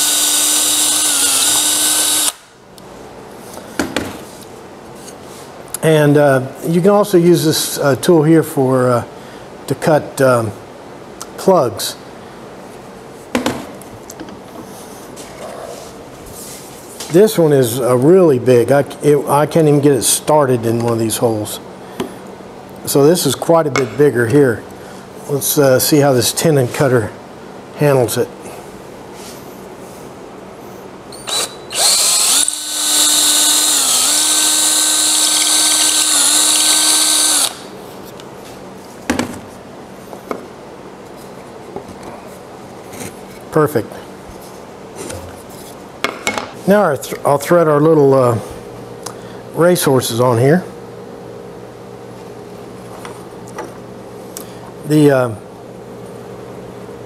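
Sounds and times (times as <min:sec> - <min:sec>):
cordless drill running: 0:00.0 - 0:02.5, 0:31.2 - 0:37.7.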